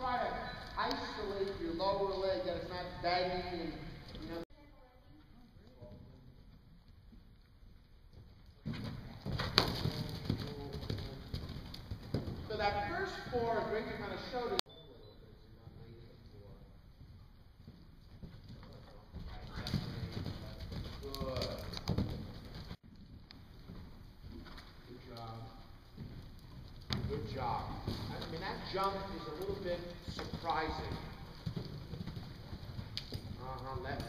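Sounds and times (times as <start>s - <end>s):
horse hoofbeats on soft ground: 5.1s - 14.0s, 15.7s - 34.0s.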